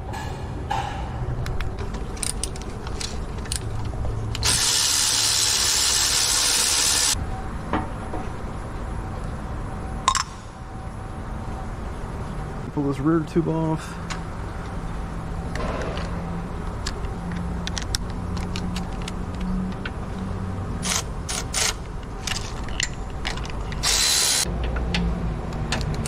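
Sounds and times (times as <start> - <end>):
metal tools clicking and knocking: 1.5 - 4.5, 21.3 - 24.0
electric ratchet spinning: 4.4 - 7.2, 23.8 - 24.5.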